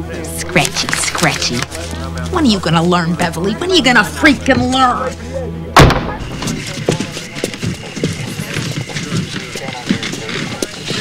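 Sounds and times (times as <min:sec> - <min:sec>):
loud boom: 0:05.8 - 0:06.4.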